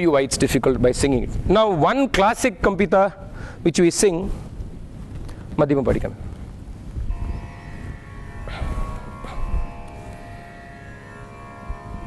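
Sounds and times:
steady drone of held tones: 7.0s - 12.0s.

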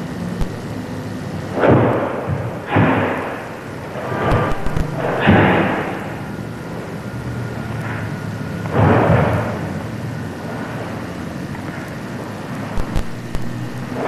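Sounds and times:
camcorder hiss and rumble: 0.0s - 14.0s
sharp snaps: 4.2s - 5.4s, 12.8s - 13.9s.

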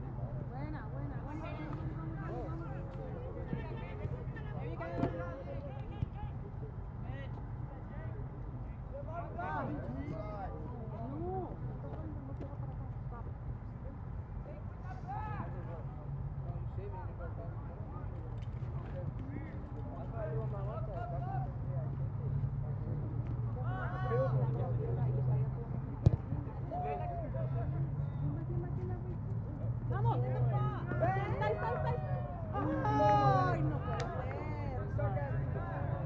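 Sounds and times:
distant shouts and calls: 26.6s - 28.3s.

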